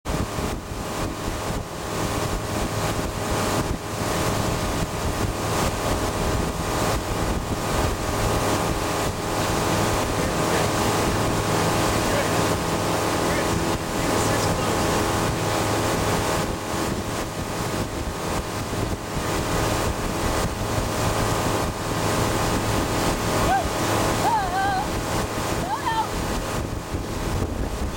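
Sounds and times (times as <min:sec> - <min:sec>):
boat engine running: 0:00.1 - 0:27.9
water rushing past hull: 0:00.1 - 0:27.9
wind buffeting microphone: 0:00.1 - 0:27.9.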